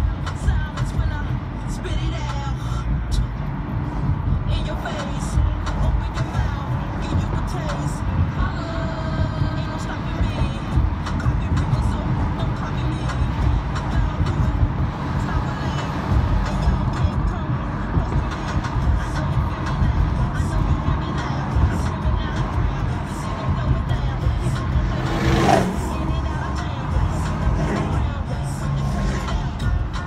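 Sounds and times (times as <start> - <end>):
car driving rumble: 0.0 - 30.0
music on car radio: 0.0 - 30.0.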